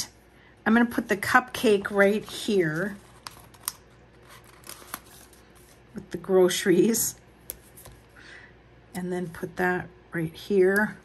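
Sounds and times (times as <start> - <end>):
paper rustling: 1.6 - 5.8.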